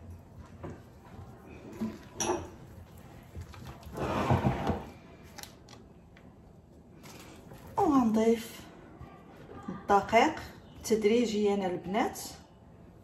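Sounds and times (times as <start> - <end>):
batter squelching and scraping: 0.0 - 5.6, 6.7 - 9.5.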